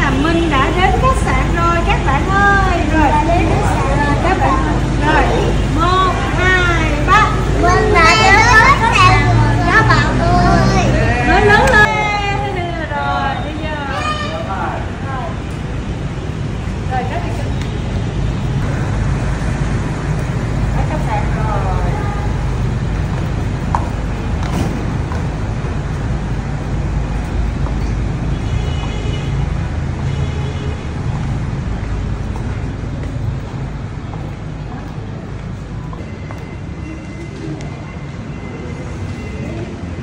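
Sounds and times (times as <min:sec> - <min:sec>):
adults and children talking: 0:00.0 - 0:15.8, 0:20.7 - 0:22.8
traffic rumble: 0:00.0 - 0:40.0.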